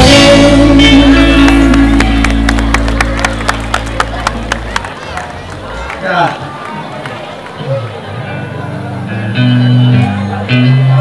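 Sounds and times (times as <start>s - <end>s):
reggae band final chord: 0.0s - 4.2s.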